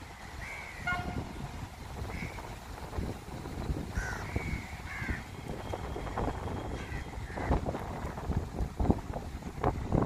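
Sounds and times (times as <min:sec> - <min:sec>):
train horn toot: 0:00.8 - 0:01.4.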